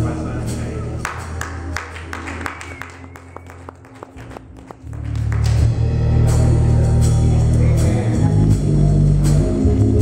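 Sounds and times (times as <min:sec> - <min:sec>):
worship band music: 0:00.0 - 0:10.0
sharp claps: 0:01.0 - 0:05.8.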